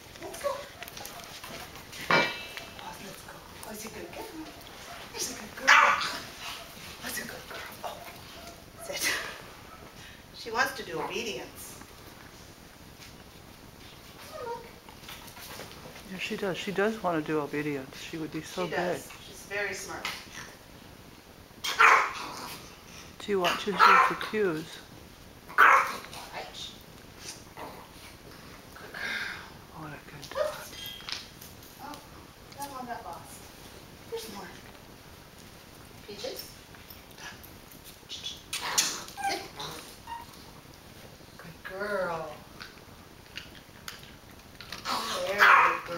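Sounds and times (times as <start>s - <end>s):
dog whining: 14.2s - 14.8s, 38.2s - 40.6s.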